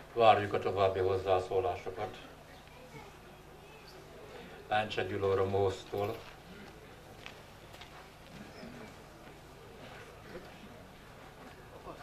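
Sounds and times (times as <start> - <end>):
people talking quietly: 0.0 - 12.0.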